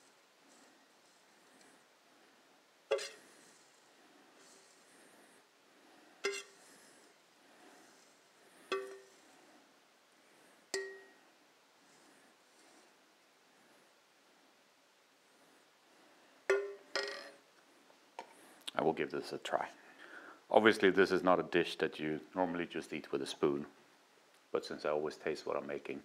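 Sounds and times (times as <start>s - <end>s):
metal spoon scraping saucepan: 2.9s - 3.6s, 6.2s - 6.8s
spoon clinking against pan: 6.2s - 6.6s, 8.7s - 9.1s, 10.8s - 11.1s.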